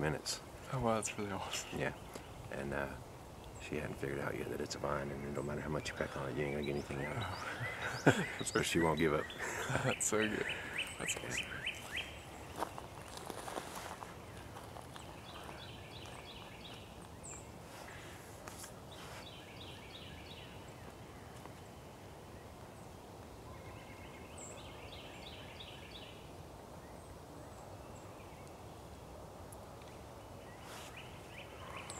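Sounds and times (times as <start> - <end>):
songbird singing: 0.0 - 31.9.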